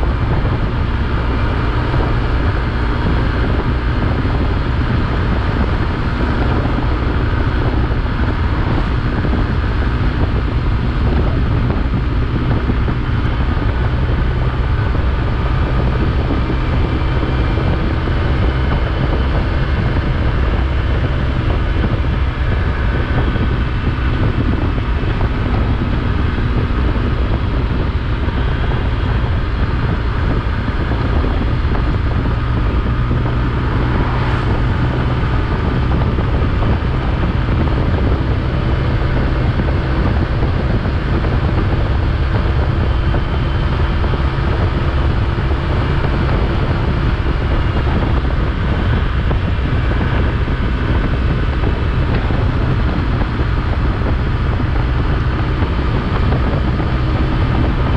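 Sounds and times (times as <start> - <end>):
motorcycle engine running: 0.0 - 57.9
wind rush: 0.0 - 57.9.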